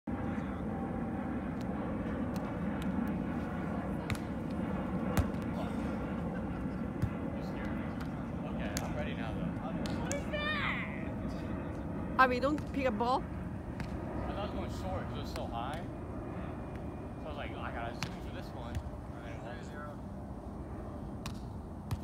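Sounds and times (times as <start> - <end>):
distant voices: 0.1 - 21.9.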